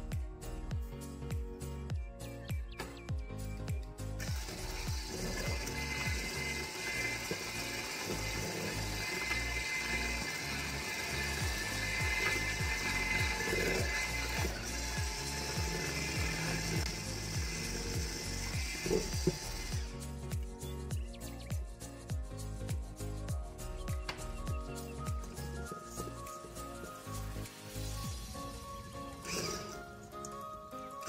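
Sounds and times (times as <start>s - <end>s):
electric hand mixer whining: 4.2s - 20.1s, 26.8s - 31.0s.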